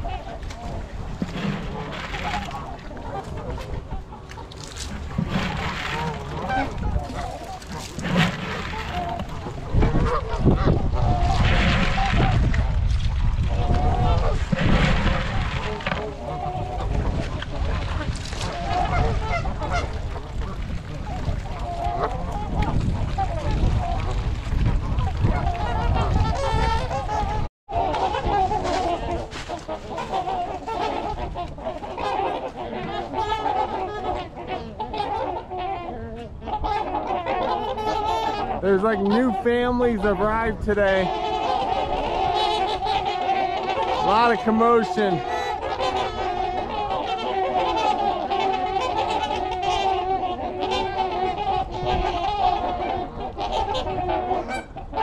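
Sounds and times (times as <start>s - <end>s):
geese and swans honking: 0.0s - 55.0s.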